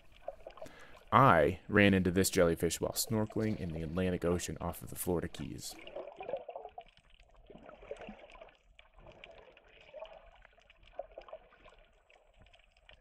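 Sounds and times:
muffled underwater sloshing: 0.0s - 13.0s.

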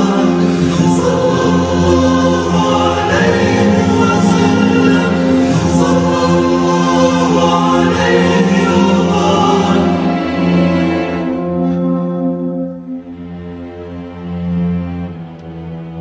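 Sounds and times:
choir singing held chords: 0.0s - 15.8s
film score music: 0.0s - 16.0s.

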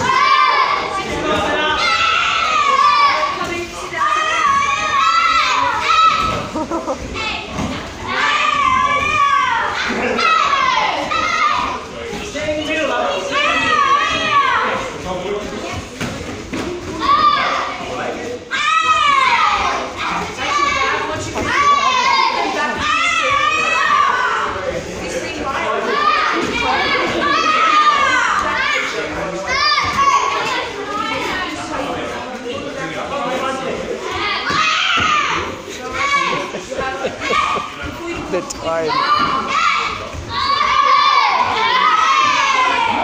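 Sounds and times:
children shouting: 0.0s - 15.1s, 16.5s - 24.8s, 25.5s - 32.1s, 33.4s - 43.0s.

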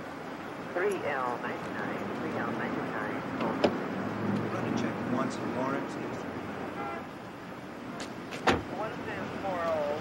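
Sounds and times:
car and roadside noise: 0.0s - 10.0s
car door shutting: 8.3s - 8.7s.

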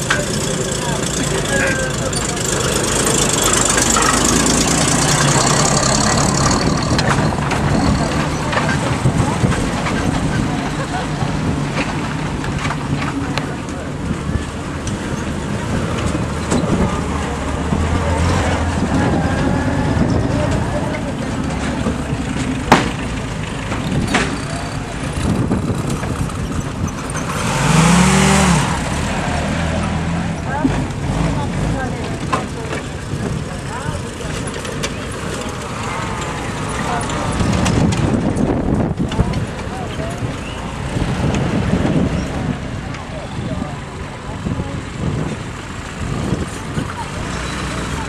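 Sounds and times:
military vehicles driving slowly: 0.0s - 48.0s.

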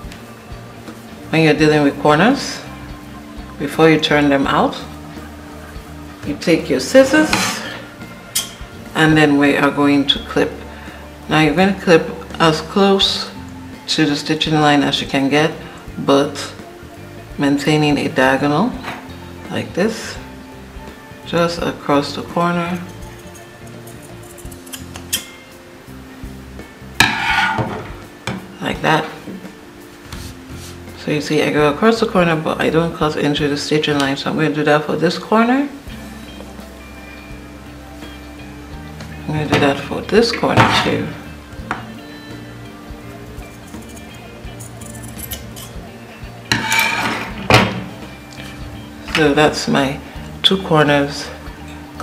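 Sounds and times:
background music: 0.0s - 52.0s.

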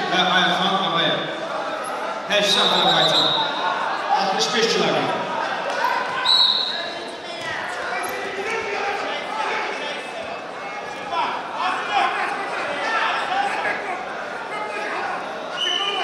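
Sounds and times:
voices echoing in a hall: 0.0s - 16.0s.

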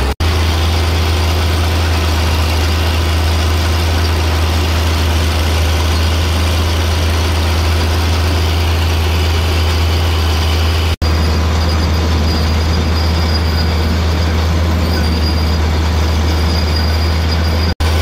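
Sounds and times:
crawler tractor diesel engine drone: 0.0s - 18.0s.

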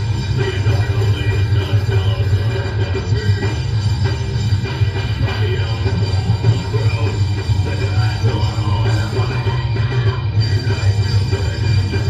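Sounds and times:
bass guitar: 0.0s - 12.0s
distorted electric guitar: 0.0s - 12.0s
drum kit: 0.0s - 12.0s.

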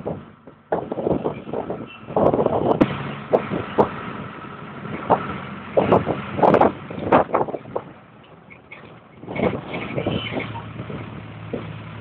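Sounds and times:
road and engine noise: 0.0s - 12.0s.

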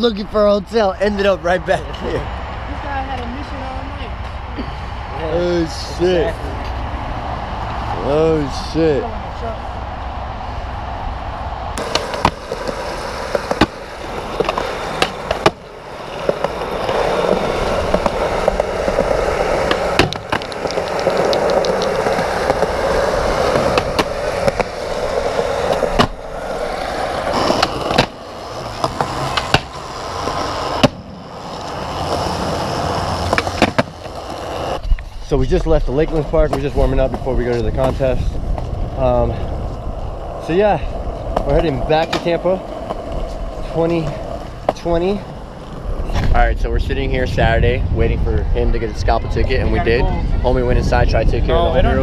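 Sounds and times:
skateboard wheels rolling on concrete: 0.0s - 52.0s
skateboard clacking on ground: 11.8s - 35.1s, 36.1s - 46.3s.

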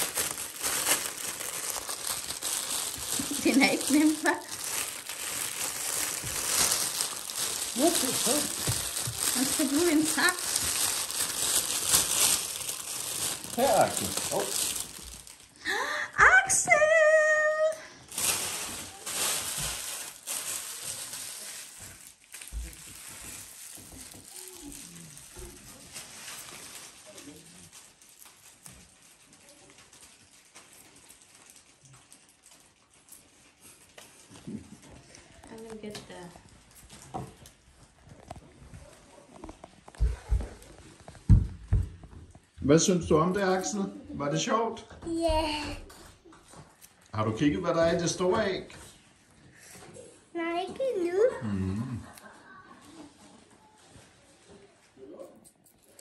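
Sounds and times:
sweet wrappers rustling: 0.0s - 16.0s, 16.7s - 43.8s, 45.1s - 47.3s, 52.2s - 56.0s
murmured voices: 51.4s - 52.8s.

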